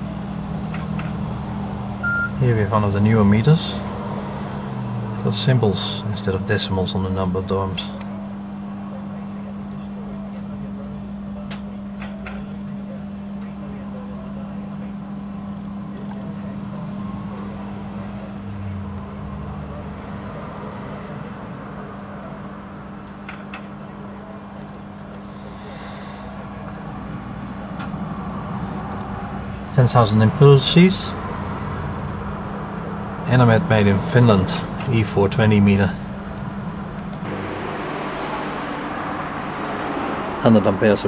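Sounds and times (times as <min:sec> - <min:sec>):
steady low hum: 0:37.2 - 0:41.0.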